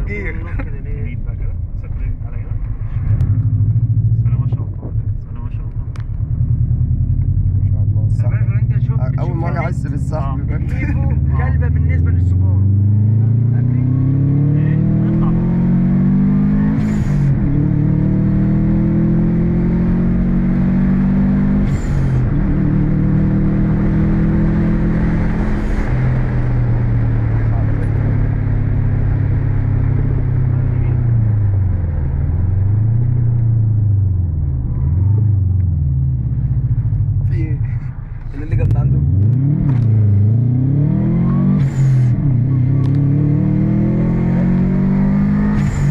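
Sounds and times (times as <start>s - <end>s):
car engine accelerating: 0.0s - 45.9s
rush of noise at gear changes: 0.0s - 45.9s.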